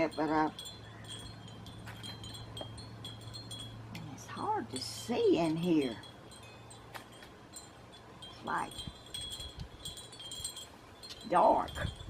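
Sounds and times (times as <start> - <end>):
wind chimes tinkling: 0.0 - 12.0.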